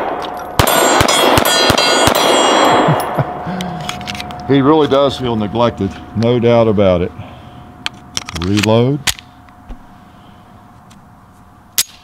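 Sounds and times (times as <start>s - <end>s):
pistol shot: 0.0s - 3.1s
mosquito whine: 3.4s - 7.9s.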